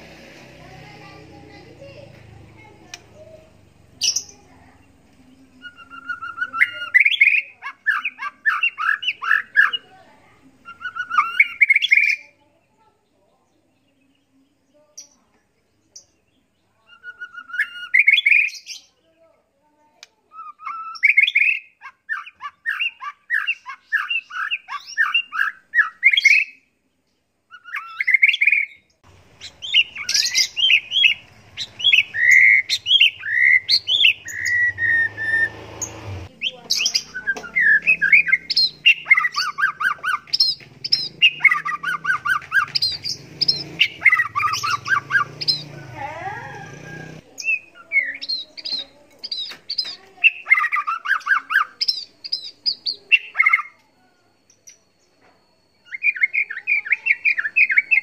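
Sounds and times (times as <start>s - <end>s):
bird singing whistled phrases: 5.4s - 9.9s, 10.6s - 12.2s, 16.8s - 19.0s, 20.3s - 26.7s, 27.5s - 35.6s, 36.3s - 45.7s, 46.4s - 53.8s, 54.7s - 58.0s.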